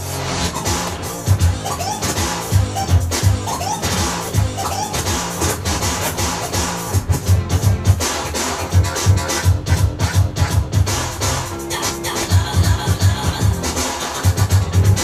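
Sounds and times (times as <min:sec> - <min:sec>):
vinyl scratching: 0:00.0 - 0:15.0
drum beat: 0:00.6 - 0:11.6, 0:12.2 - 0:15.0.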